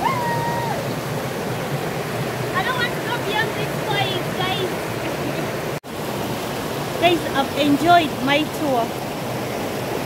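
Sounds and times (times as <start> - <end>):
water rushing over rocks: 0.0 - 10.0.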